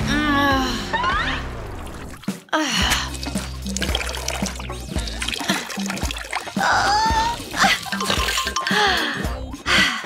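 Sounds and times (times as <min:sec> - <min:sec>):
background music with steady beat: 0:02.2 - 0:10.0
water trickling from wrung hair: 0:03.1 - 0:08.8.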